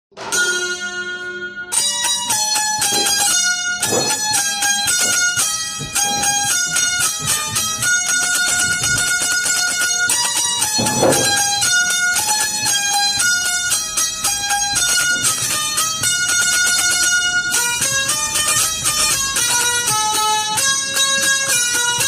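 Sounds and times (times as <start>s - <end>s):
banjo melody: 0.1s - 22.0s.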